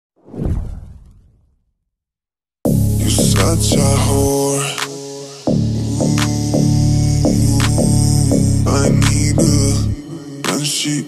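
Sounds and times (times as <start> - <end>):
whoosh sound effect: 0.2 - 1.7.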